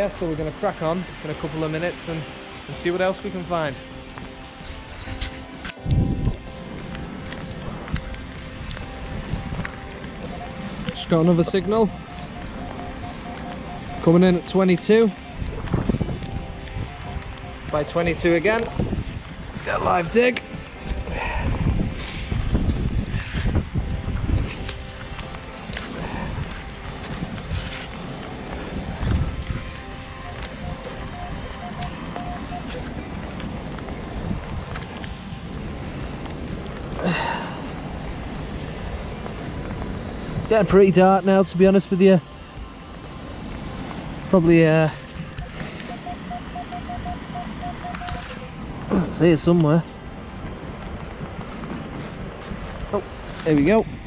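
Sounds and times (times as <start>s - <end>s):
rain: 0.0s - 5.9s, 31.8s - 40.6s
wind buffeting microphone: 4.5s - 54.0s
metal detector beeps: 10.2s - 19.0s, 29.1s - 33.5s, 44.3s - 49.4s.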